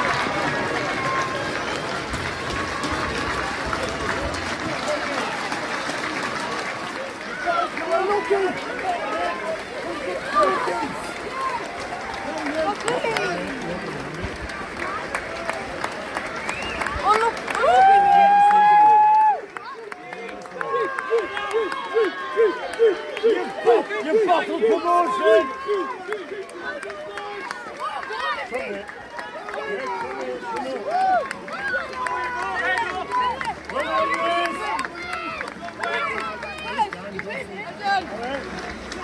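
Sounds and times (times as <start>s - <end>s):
fans shouting: 0.0s - 39.0s.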